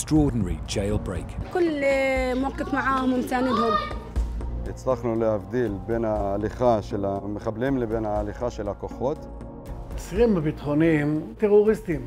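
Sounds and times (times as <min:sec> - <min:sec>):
woman speaking animatedly: 0:01.5 - 0:04.0.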